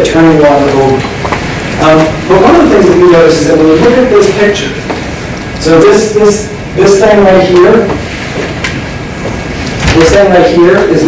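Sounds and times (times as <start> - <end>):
rumbling room noise: 0.0 - 11.0.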